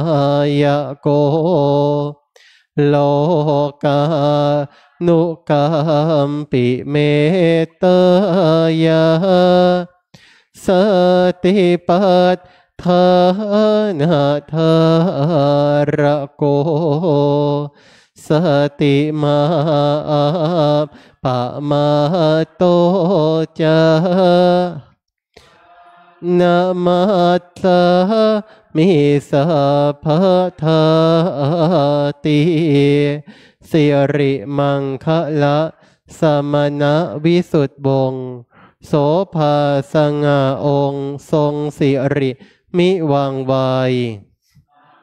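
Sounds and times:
monotone chanting: 2.8s - 10.0s, 10.6s - 45.0s.

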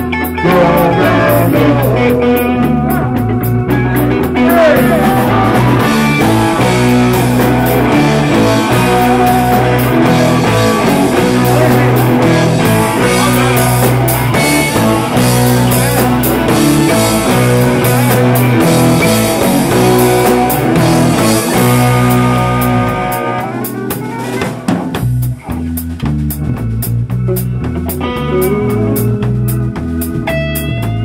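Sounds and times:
low sustained bass notes: 0.0s - 24.2s, 25.0s - 31.0s
keyboard: 0.0s - 25.8s
drums: 0.0s - 31.0s.

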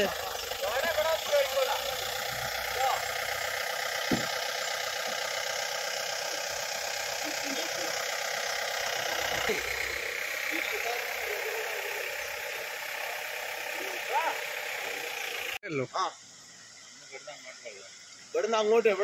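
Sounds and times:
car engine running: 0.0s - 15.6s.

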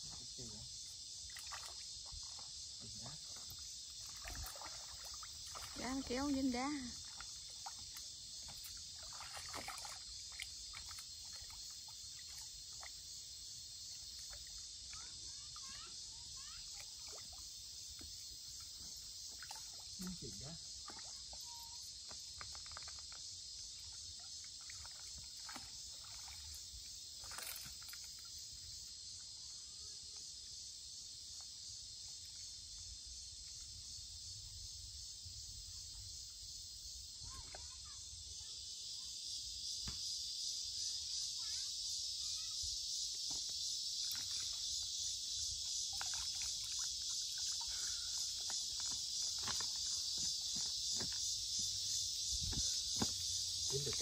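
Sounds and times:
high-pitched insect chorus: 0.0s - 54.0s.

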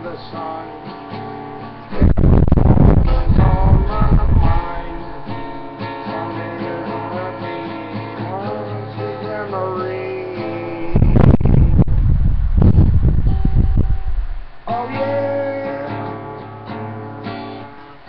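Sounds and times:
acoustic guitar playing: 0.0s - 18.0s.

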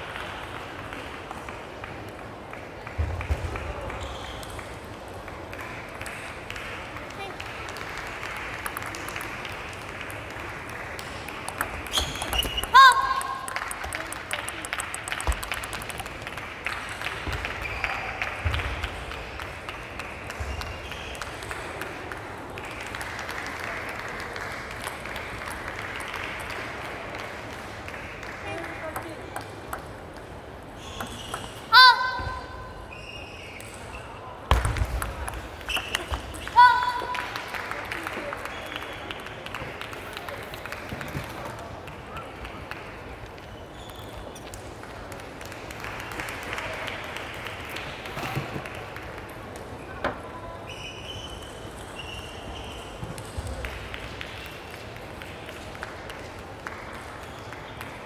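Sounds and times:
background murmur: 0.0s - 58.0s.

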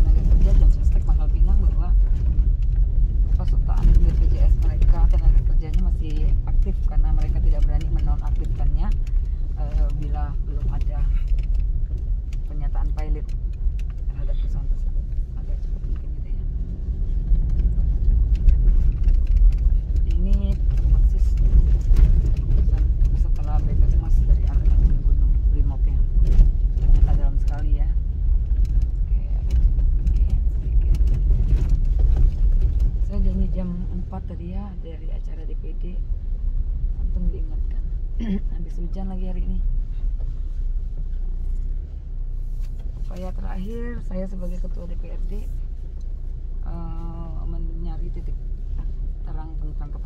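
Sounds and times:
car engine and tyres rumbling: 0.0s - 50.0s
car knocking and rattling: 0.0s - 50.0s.

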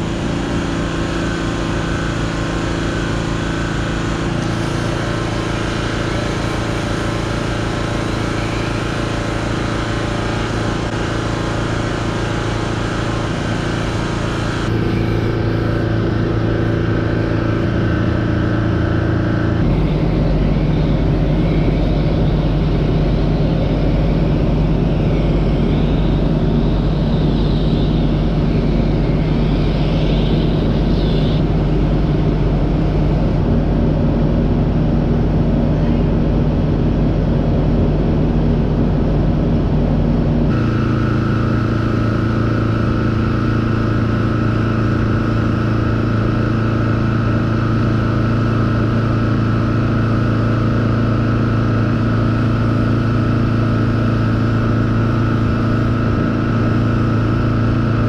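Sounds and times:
engine running steadily: 0.0s - 58.0s.

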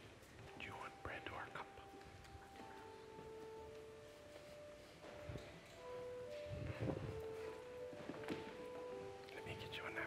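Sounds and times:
quiet music with held notes: 0.0s - 10.0s
man speaking softly: 0.6s - 1.9s, 9.3s - 10.0s.

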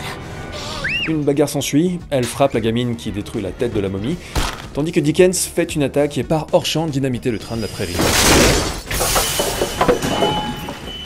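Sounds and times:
train derailing clatter: 8.8s - 11.0s.

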